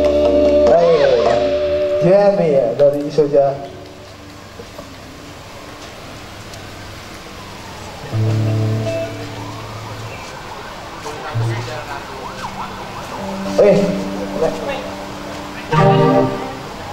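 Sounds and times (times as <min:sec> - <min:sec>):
faint sliding pitches: 0:11.3 - 0:16.9.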